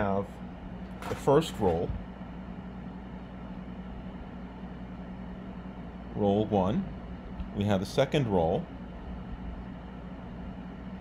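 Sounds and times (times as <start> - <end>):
low hum with faint hiss: 0.0 - 11.0.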